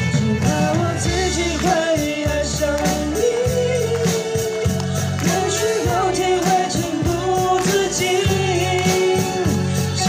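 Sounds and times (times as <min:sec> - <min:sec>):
backing track with bass and drums: 0:00.0 - 0:10.0.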